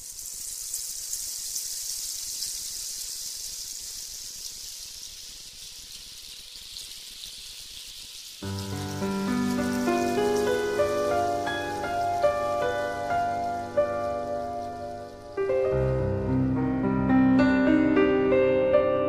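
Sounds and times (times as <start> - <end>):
high rain-like hiss: 0.0 - 19.0
music with sustained keyboard notes: 8.4 - 19.0.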